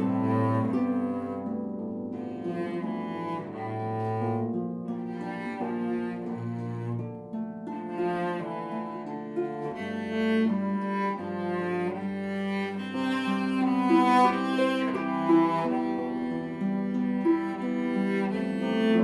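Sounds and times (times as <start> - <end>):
bowed cello notes: 0.0 - 19.0
plucked harp: 0.0 - 19.0.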